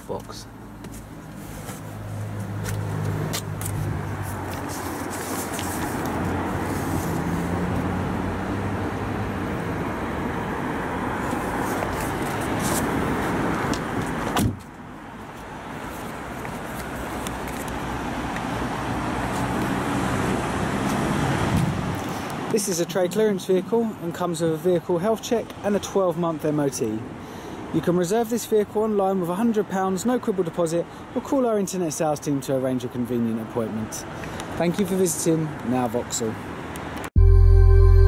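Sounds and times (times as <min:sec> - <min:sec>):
low rumble of motor vehicles: 0:00.0 - 0:31.2.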